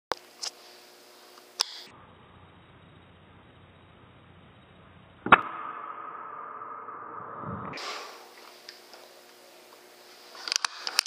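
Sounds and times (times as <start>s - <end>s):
steady ringing tone: 1.8s - 8.3s
air rifle shot: 5.2s - 8.3s.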